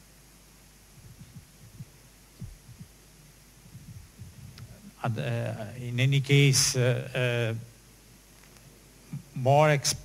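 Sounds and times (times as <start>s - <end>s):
faint steady hum: 0.0s - 10.0s
microphone handling thumps: 0.9s - 5.0s.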